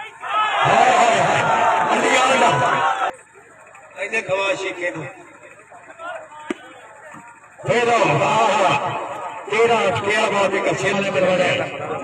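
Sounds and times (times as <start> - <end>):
faint crowd voices: 0.0 - 12.0.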